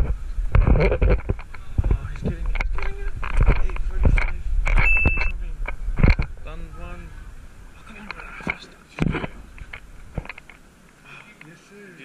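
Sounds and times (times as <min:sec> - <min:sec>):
low street rumble: 0:00.0 - 0:12.0
high electronic beep: 0:04.8 - 0:05.4.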